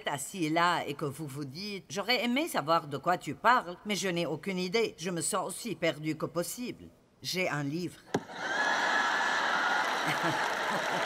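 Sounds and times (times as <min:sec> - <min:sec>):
audience laughing and clapping: 0:08.2 - 0:11.0.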